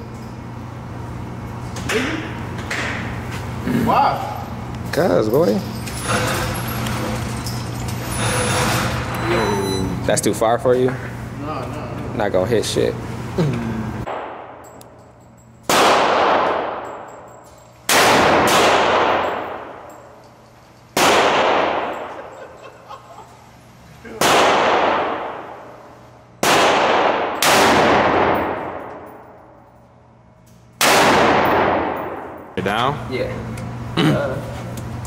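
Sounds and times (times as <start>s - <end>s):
rifle shots with long echo: 14.1s - 14.6s, 15.7s - 17.1s, 17.9s - 19.9s, 21.0s - 22.3s, 24.2s - 25.8s, 26.4s - 29.3s, 30.8s - 32.5s.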